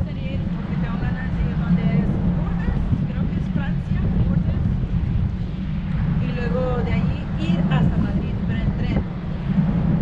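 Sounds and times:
boat engine rumble: 0:00.0 - 0:10.0
wind on microphone: 0:00.0 - 0:10.0.

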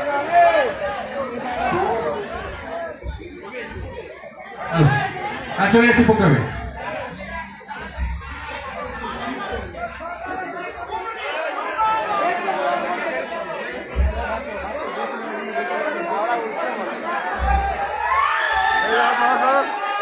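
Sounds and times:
low thumps: 0:00.0 - 0:10.2, 0:13.8 - 0:14.6, 0:17.3 - 0:18.8
crowd babble: 0:00.0 - 0:20.0.

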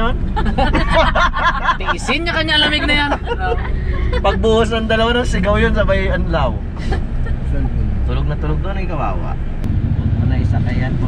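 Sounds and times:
people talking and laughing: 0:00.0 - 0:05.1, 0:06.7 - 0:08.1
road noise: 0:00.0 - 0:11.0
van engine rumble: 0:00.0 - 0:11.0.

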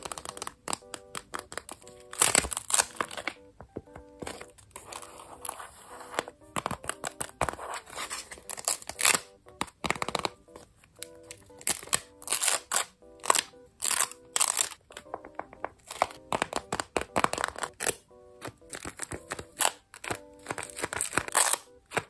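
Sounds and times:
paper crinkling and rustling: 0:00.0 - 0:03.4, 0:04.2 - 0:10.3, 0:15.7 - 0:22.0
soft background music: 0:00.0 - 0:22.0.

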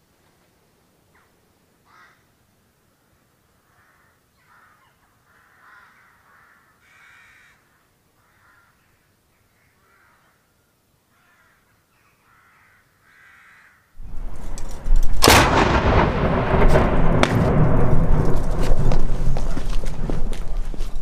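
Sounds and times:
crows cawing: 0:01.8 - 0:02.3, 0:03.6 - 0:10.5, 0:11.1 - 0:14.0
field gun firing: 0:14.0 - 0:19.4
loud rushing noise: 0:14.0 - 0:20.7
rolling echo: 0:14.0 - 0:21.0.

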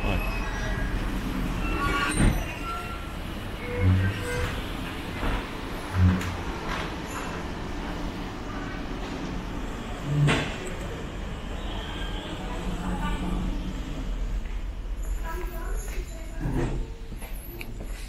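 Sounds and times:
low machinery rumble: 0:02.4 - 0:11.5.

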